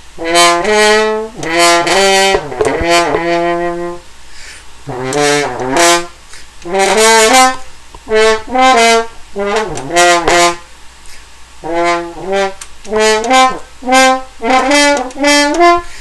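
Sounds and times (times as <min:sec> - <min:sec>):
french horn playing phrases: 0:00.1 - 0:04.2, 0:04.8 - 0:10.7, 0:11.6 - 0:16.0.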